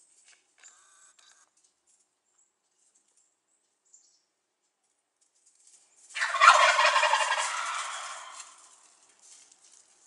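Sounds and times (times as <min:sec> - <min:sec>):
turkey gobbling: 0:06.2 - 0:08.7.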